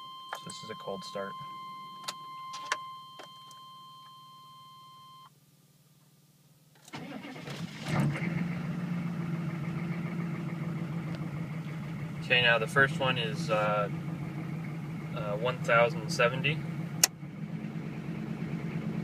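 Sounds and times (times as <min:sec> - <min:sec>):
diesel engine cranking and idling: 0:06.9 - 0:19.0.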